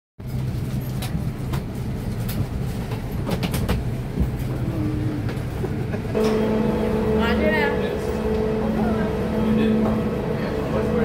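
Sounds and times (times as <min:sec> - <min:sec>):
clicks and knocks of passengers: 0:00.2 - 0:06.5
airliner cabin hum: 0:00.2 - 0:11.0.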